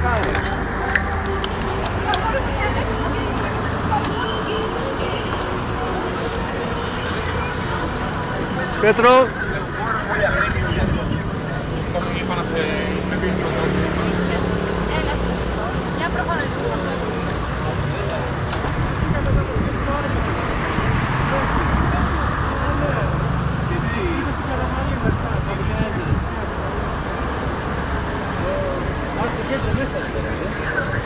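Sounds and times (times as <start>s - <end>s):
people calling and chatting: 0.0s - 31.0s
road and wind noise: 0.0s - 31.0s
traffic: 0.0s - 31.0s.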